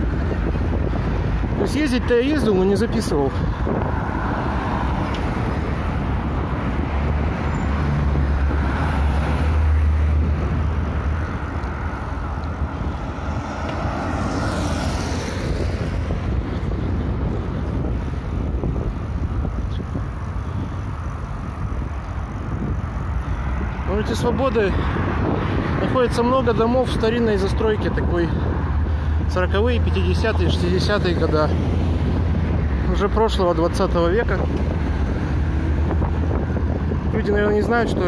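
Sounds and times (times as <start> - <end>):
street traffic noise: 0.0 - 38.0
wind buffeting microphone: 0.0 - 38.0
vehicle swishing past: 3.7 - 17.9.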